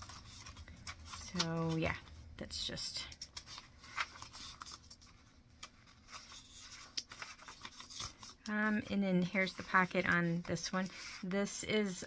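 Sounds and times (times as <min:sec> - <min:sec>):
paper rustling and scraping: 0:00.0 - 0:02.7, 0:03.3 - 0:11.6
crisp paper clicks: 0:03.0 - 0:08.5.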